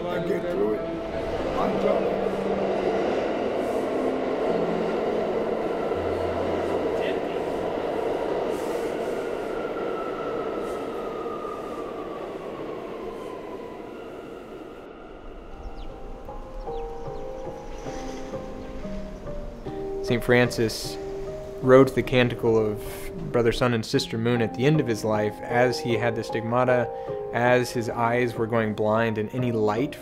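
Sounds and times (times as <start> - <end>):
subway train rumble: 0.0 - 29.8.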